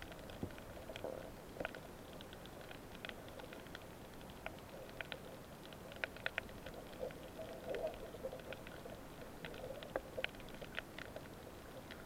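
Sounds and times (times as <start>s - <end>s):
clicks and crackles: 0.0s - 12.0s
muffled underwater rumble: 0.0s - 12.0s.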